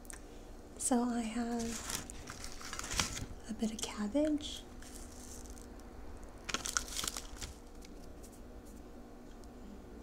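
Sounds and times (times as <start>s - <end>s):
cabbage crackling on dry nori: 1.5s - 3.4s, 4.8s - 8.1s.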